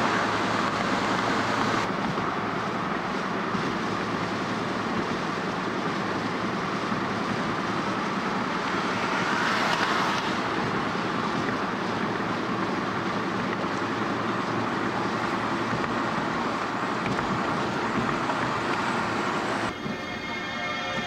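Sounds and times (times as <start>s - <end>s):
car road noise at highway speed: 0.0s - 21.0s.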